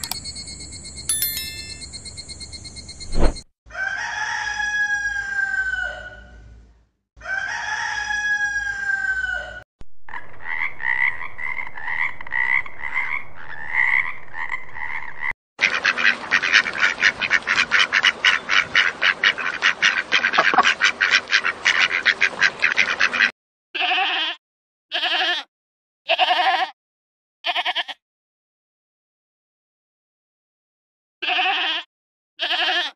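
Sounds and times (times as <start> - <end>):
rooster crowing: 3.7 - 6.4, 7.2 - 9.6
frog croaking: 20.4 - 20.7
goats bleating: 23.8 - 25.5, 26.1 - 26.7, 27.5 - 28.0, 31.2 - 32.9.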